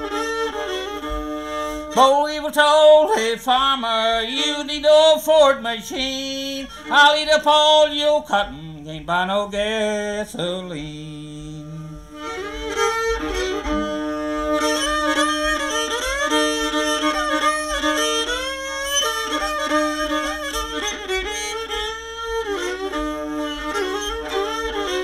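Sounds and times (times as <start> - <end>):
banjo accompaniment: 0.0 - 6.0, 12.0 - 25.0
fiddle playing tune: 0.0 - 25.0.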